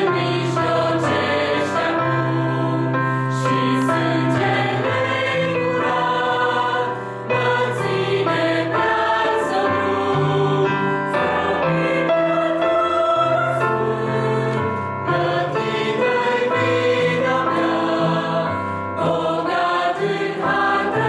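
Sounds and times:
mixed choir singing a hymn: 0.0 - 21.0
piano accompaniment: 0.0 - 21.0.

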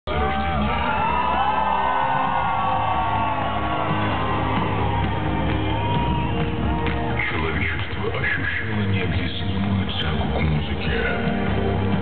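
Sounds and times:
crowd whooping and cheering: 0.1 - 7.8
loud live music with heavy bass: 0.1 - 12.0.

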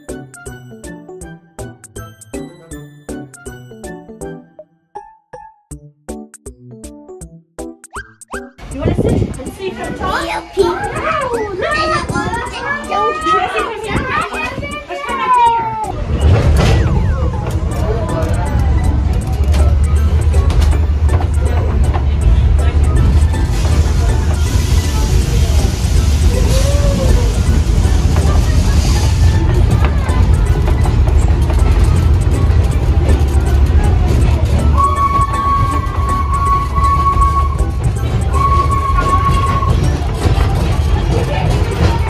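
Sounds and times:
train coach rumbling: 8.6 - 42.0
voices: 8.6 - 42.0.

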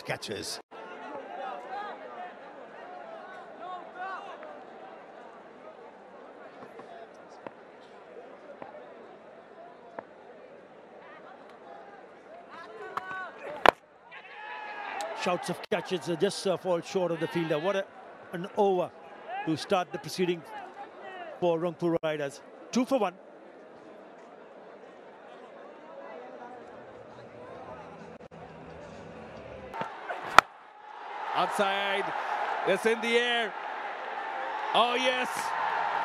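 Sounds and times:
stadium crowd murmur: 0.0 - 36.0
players shouting: 12.9 - 21.3, 29.8 - 36.0.

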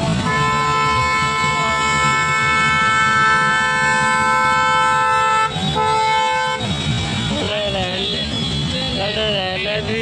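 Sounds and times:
low rumble of road traffic: 0.0 - 10.0
vehicle horn blast: 0.2 - 9.1.

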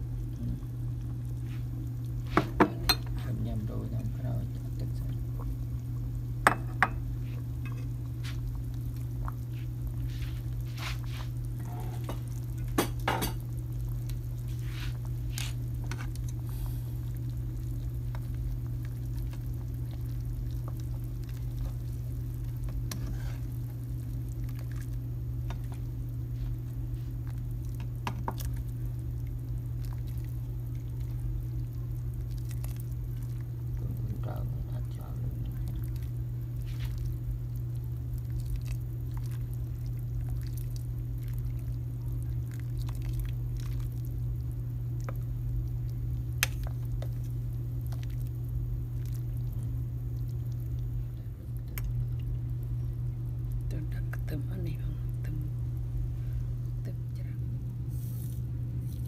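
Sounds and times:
steady low hum: 0.0 - 59.0
ceramic bowls and ladle clinking: 2.4 - 3.2, 12.8 - 13.4.

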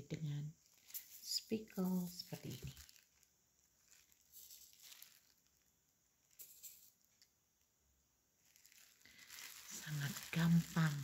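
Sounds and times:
sprinkles pattering on cookies: 0.6 - 7.4, 8.4 - 11.0.

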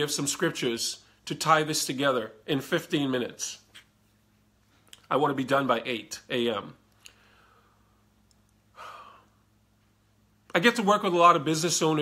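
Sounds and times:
faint low hum: 0.0 - 12.0
man breathing out: 8.7 - 9.5.

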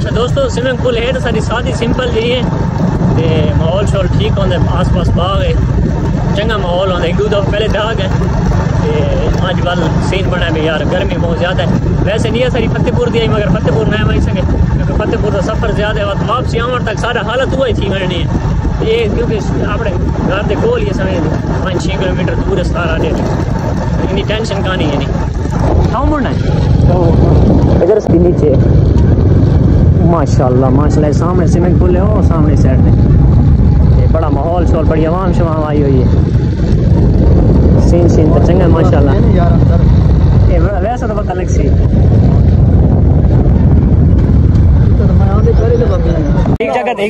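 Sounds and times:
motorcycle engine rumbling: 0.0 - 47.0
wind buffeting microphone: 0.0 - 47.0
man talking: 3.1 - 5.6, 6.2 - 23.2, 24.0 - 25.2, 33.8 - 36.2, 37.7 - 41.8, 45.0 - 47.0.

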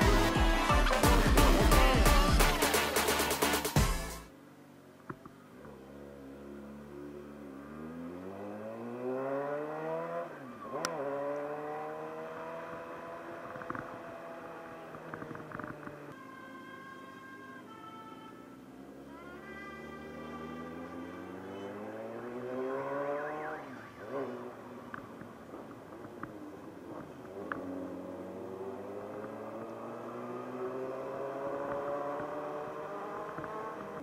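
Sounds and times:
higher tones stepping down and up: 0.0 - 4.3
motorcycle engine accelerating: 5.6 - 16.1, 18.8 - 34.0.

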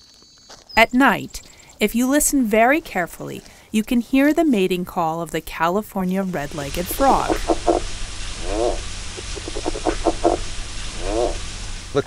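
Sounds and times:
steady low hum: 6.2 - 12.0
frog mating call: 6.4 - 12.0.

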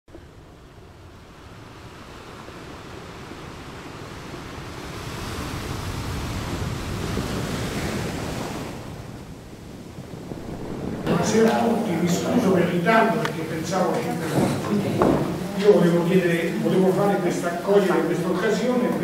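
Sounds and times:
sea waves washing on shore: 0.2 - 19.0.

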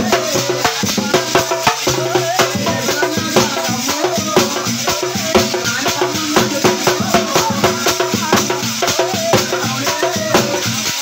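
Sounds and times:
brass cymbals and jingles: 0.0 - 11.0
folk devotional music: 0.0 - 11.0.

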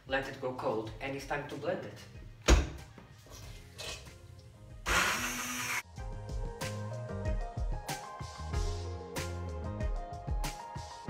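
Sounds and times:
background music: 0.0 - 11.0
hand blender whirring: 4.8 - 5.9.

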